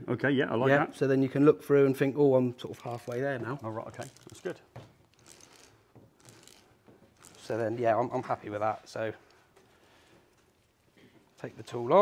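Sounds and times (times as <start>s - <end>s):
cable stripper blade scraping: 2.8s - 8.0s.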